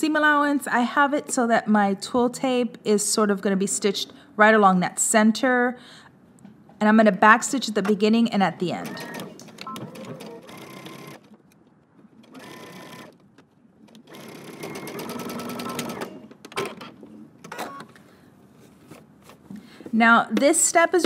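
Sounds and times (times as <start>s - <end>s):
sewing machine stitching: 8.8s - 11.3s, 12.2s - 13.2s, 14.0s - 17.8s.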